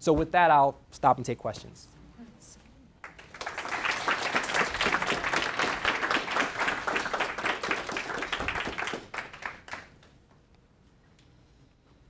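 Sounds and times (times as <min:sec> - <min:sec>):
audience applauding: 0:03.0 - 0:10.2.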